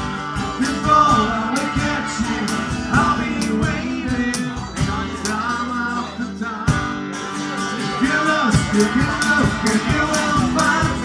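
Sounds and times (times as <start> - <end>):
guitar-led pop song: 0.0 - 11.0.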